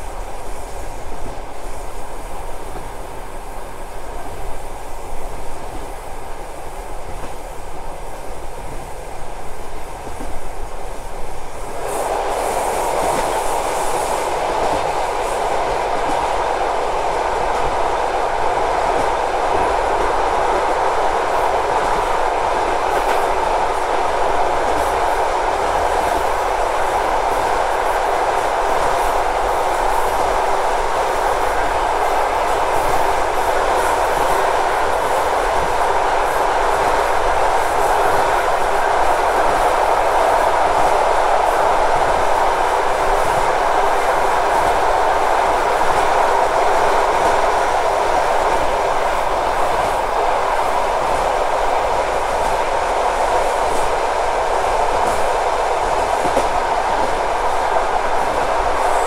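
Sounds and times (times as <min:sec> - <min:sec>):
passing freight train rumble: 0:00.0 - 0:59.0
train wheel clatter: 0:00.0 - 0:59.0.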